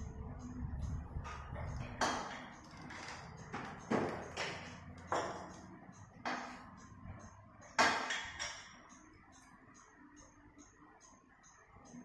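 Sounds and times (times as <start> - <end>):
metallic knocks from hand tools: 1.2 - 6.7, 7.6 - 9.0.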